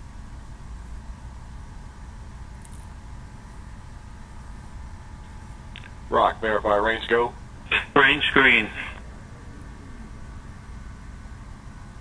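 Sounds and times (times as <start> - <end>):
steady low rumble: 0.0 - 12.0
faint hiss of venting vapour: 3.9 - 12.0.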